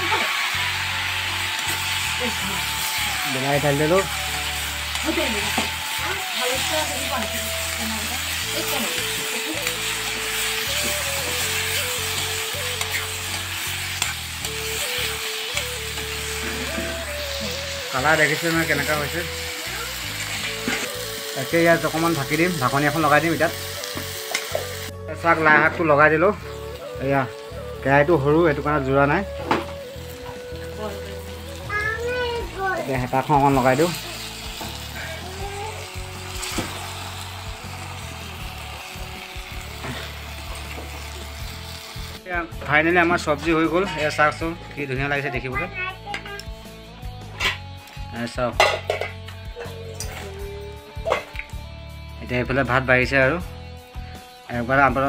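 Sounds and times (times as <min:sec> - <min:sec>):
background music: 0:00.0 - 0:55.0
food sizzling in a wok: 0:00.0 - 0:55.0.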